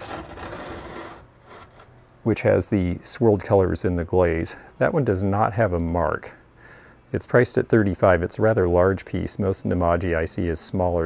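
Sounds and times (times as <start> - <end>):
pottery vase scraping on wooden shelf: 0.0 - 2.0.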